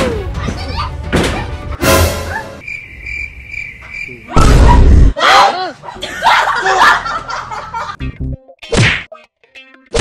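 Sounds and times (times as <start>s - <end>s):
cricket chirping: 2.6s - 4.9s.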